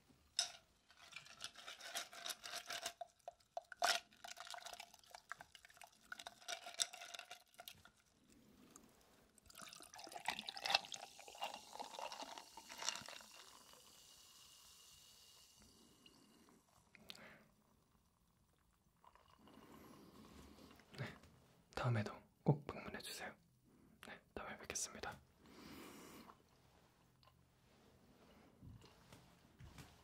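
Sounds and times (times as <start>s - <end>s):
ice cubes clinking in a glass: 0.4s - 5.4s, 6.1s - 7.8s
soda pouring over ice: 1.2s - 8.0s, 9.4s - 16.4s
soft fizz of carbonation: 7.4s - 20.3s.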